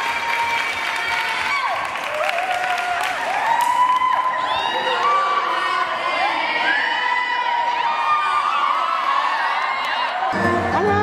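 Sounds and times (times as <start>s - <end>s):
crowd cheering and shrieking: 0.0s - 11.0s.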